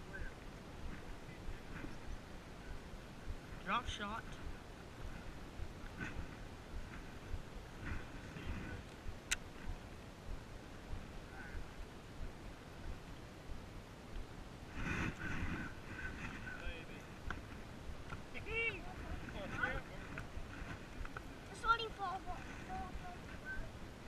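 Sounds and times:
water noise: 0:00.0 - 0:24.0
wind on microphone: 0:00.0 - 0:24.0.

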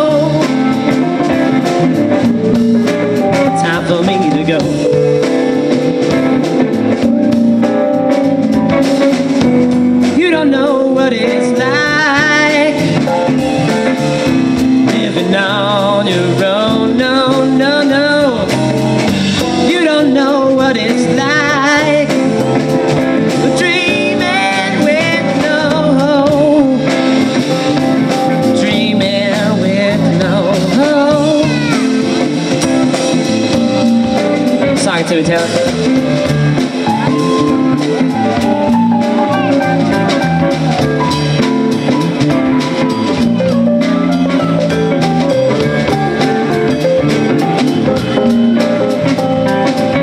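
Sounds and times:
drum kit: 0:00.0 - 0:50.0
electric guitars: 0:00.0 - 0:50.0
guitar lead with vibrato notes: 0:00.0 - 0:50.0.

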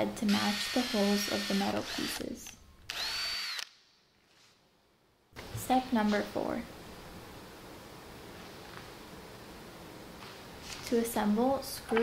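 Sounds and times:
power drill boring through wood: 0:00.3 - 0:02.2, 0:02.9 - 0:03.7.

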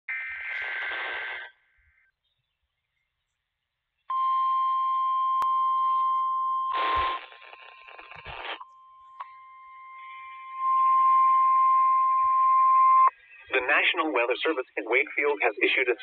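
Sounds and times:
radio static burst: 0:00.1 - 0:01.7, 0:06.7 - 0:08.6, 0:10.0 - 0:16.0
steady alarm beep: 0:04.1 - 0:07.2, 0:08.6 - 0:13.3.

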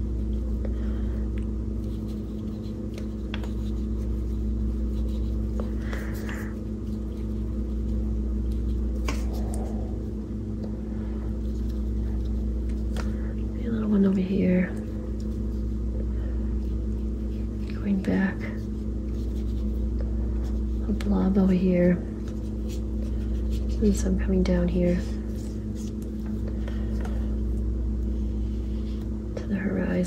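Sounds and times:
low hum with constant tones: 0:00.0 - 0:30.0.

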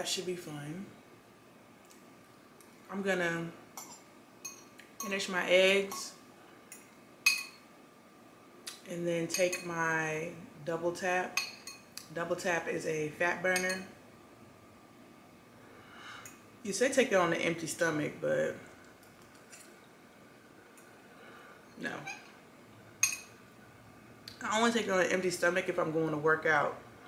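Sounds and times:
metal spoon clinking on glass bowl: 0:03.8 - 0:05.1, 0:06.7 - 0:07.6, 0:13.6 - 0:13.9, 0:23.0 - 0:23.3
person speaking: 0:21.8 - 0:22.2.

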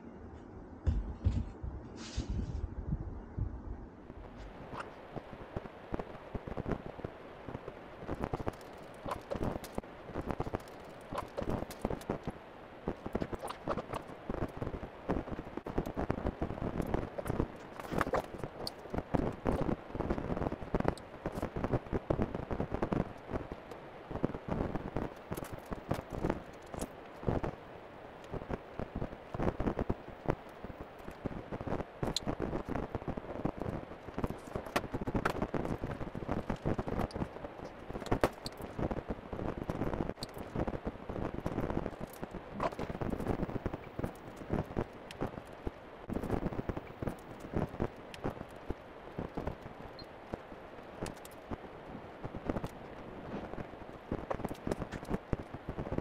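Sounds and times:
footsteps: 0:00.3 - 0:02.7.

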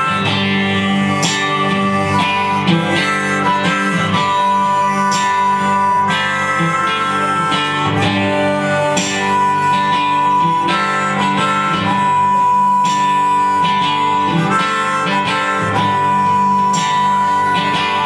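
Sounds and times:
harmonica holding long notes: 0:00.0 - 0:18.0
strummed acoustic guitars: 0:00.0 - 0:18.0.

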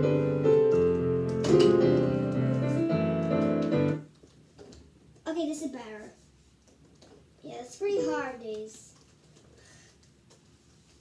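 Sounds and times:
child's voice: 0:05.2 - 0:06.2, 0:07.4 - 0:09.0.

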